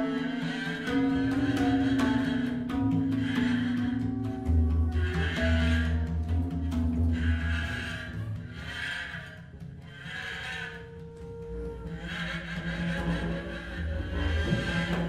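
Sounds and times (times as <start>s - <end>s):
breathy bamboo flute: 0.0s - 15.0s
double bass long low notes: 0.9s - 8.9s.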